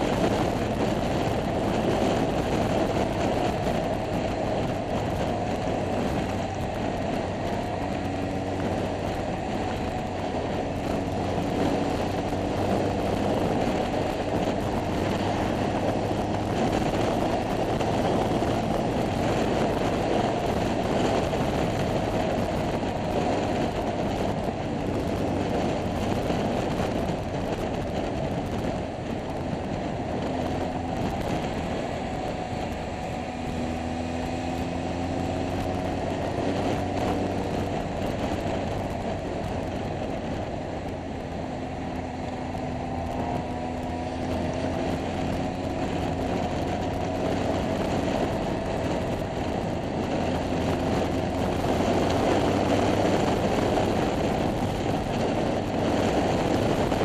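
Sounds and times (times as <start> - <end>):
scooter engine running: 0.0 - 57.0
wind noise on microphone: 0.0 - 57.0.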